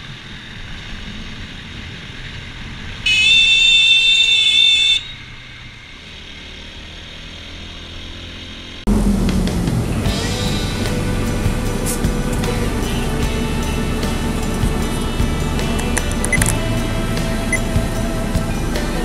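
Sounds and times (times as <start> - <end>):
motorcycle engine: 0.0 - 19.0
horn blast: 3.1 - 5.2.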